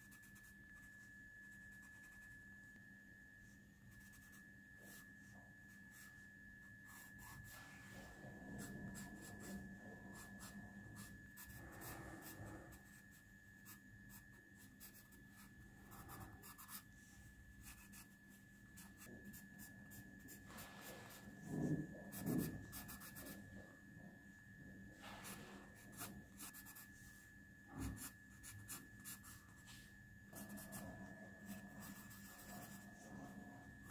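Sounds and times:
pencil scratching on paper: 3.9 - 6.2, 6.8 - 23.5, 25.0 - 27.0, 27.7 - 33.9.

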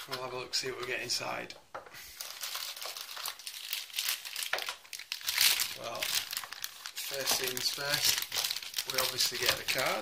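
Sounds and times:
plastic wrapping crinkling: 0.0 - 1.2, 2.0 - 10.0.

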